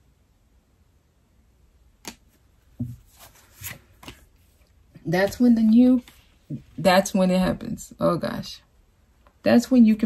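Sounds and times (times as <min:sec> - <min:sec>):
cards tapping and sliding: 0:02.0 - 0:04.4.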